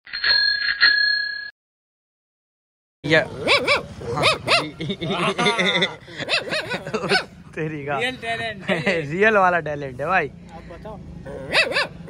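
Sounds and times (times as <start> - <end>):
bell ringing: 0.1 - 1.6.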